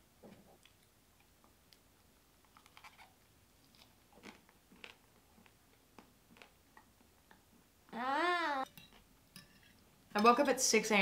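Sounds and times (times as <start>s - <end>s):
person chewing food: 2.6s - 6.6s.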